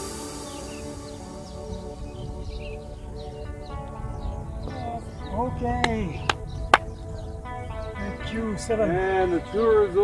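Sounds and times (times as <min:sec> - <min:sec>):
background music: 0:00.0 - 0:10.0
voices: 0:04.6 - 0:10.0.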